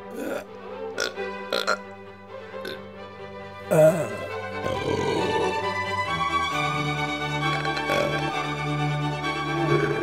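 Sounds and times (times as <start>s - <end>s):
orchestral music: 0.0s - 10.0s
woman burping: 3.7s - 5.4s.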